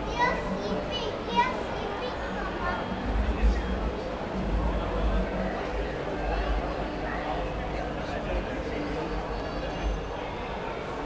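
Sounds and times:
low background murmur: 0:00.0 - 0:11.0.

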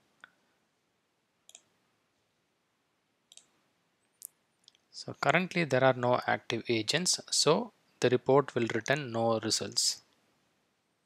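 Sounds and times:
computer mouse clicks: 0:01.5 - 0:01.7, 0:03.3 - 0:04.8.

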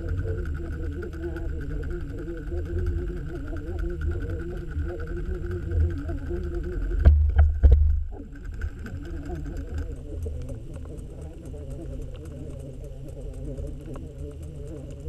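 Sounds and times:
faint constant whine: 0:00.0 - 0:15.0
muffled underwater rumble: 0:00.0 - 0:15.0
small ticks: 0:00.0 - 0:15.0.

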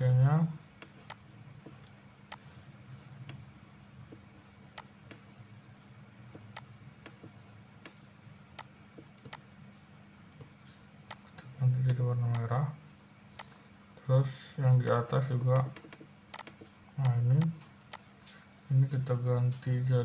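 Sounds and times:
faint low hum: 0:00.0 - 0:20.0
computer mouse clicking: 0:00.8 - 0:02.4, 0:04.8 - 0:05.2, 0:08.6 - 0:09.4, 0:15.6 - 0:18.0.

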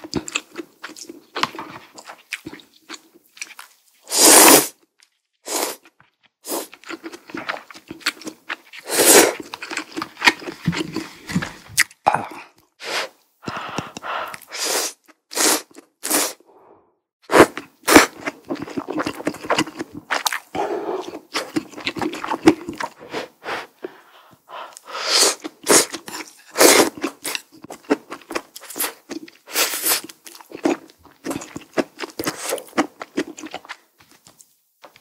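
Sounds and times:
wet chewing and mouth sounds: 0:00.0 - 0:04.0, 0:05.0 - 0:12.7, 0:17.4 - 0:35.0
noodles slurped: 0:03.5 - 0:04.8, 0:05.5 - 0:11.8, 0:17.3 - 0:33.7.

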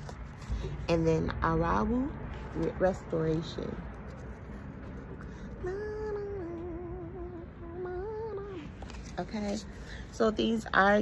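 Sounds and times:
woman humming: 0:05.6 - 0:08.7.

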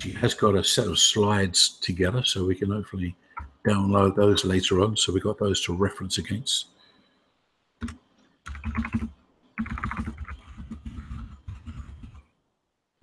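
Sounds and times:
computer keyboard typing: 0:07.8 - 0:12.3.

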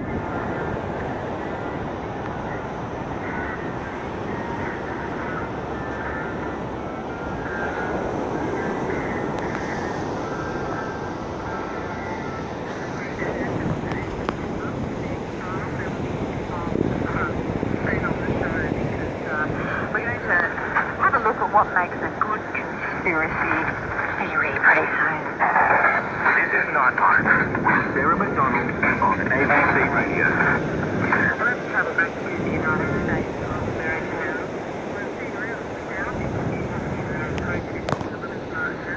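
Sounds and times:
surf rushing: 0:00.0 - 0:38.9
radio static: 0:07.4 - 0:38.9
faint radio voice: 0:12.7 - 0:38.9.

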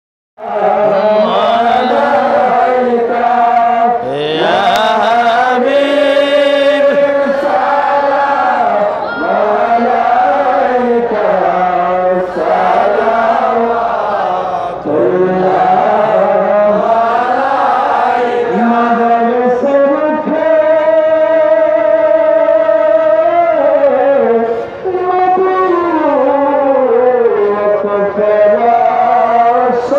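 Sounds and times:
man chanting into a microphone: 0:00.4 - 0:29.9.

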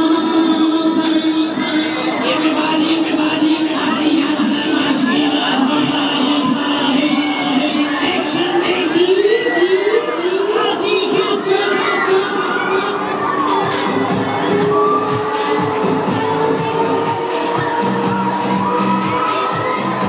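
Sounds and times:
loud fairground ride music: 0:00.0 - 0:20.0
riders shouting and cheering: 0:00.0 - 0:20.0.

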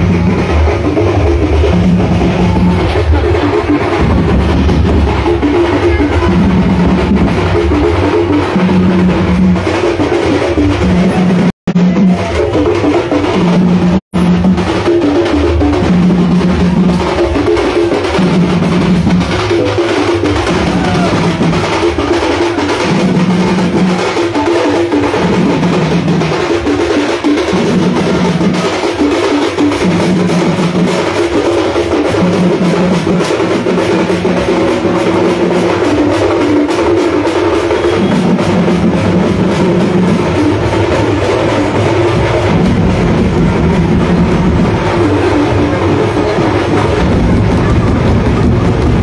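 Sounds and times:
barrel drums beating: 0:00.0 - 0:49.0.

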